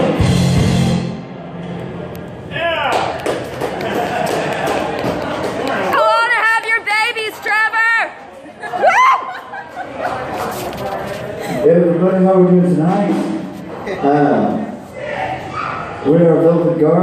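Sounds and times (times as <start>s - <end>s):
voices whooping and yelling: 8.6s - 9.6s.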